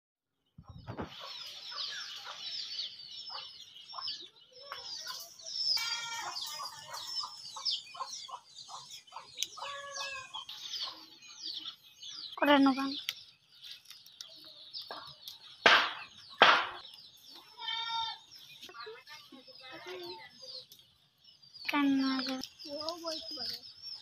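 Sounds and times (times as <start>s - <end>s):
small birds chirping: 0.3s - 24.0s
chicken clucking: 0.6s - 13.2s, 14.2s - 17.5s.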